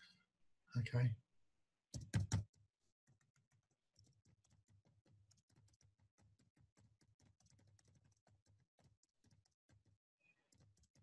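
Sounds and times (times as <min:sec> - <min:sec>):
computer keyboard typing: 0:03.1 - 0:09.9.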